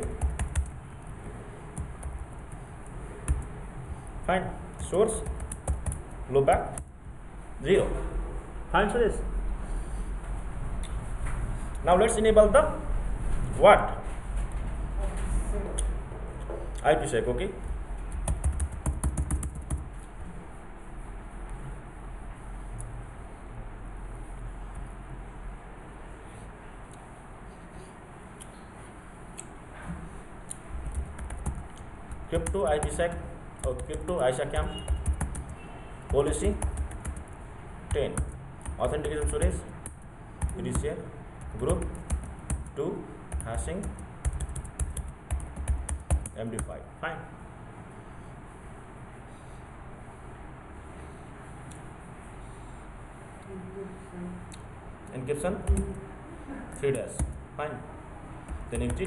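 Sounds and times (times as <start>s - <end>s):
computer keyboard typing: 0.0s - 1.0s, 1.7s - 4.1s, 4.8s - 7.0s, 18.0s - 20.1s, 30.8s - 46.8s, 55.6s - 56.0s, 58.4s - 59.0s.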